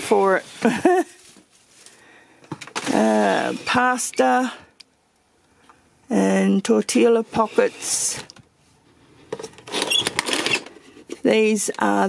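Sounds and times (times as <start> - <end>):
person laughing: 0.6 - 1.3.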